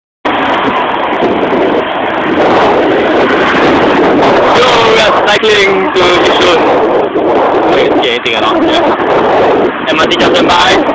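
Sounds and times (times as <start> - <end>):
passing road traffic rushing: 0.2 - 10.9
wind on microphone: 0.2 - 10.9.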